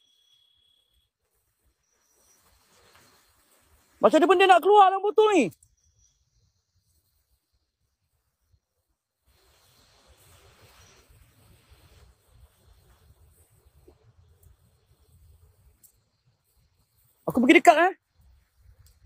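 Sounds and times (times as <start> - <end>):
light rustle: 1.2 - 4.1.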